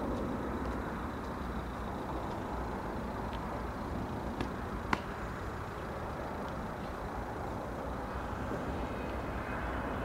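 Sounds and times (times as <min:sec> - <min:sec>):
low outdoor rumble: 0:00.0 - 0:10.0
faint ticks: 0:00.1 - 0:03.5.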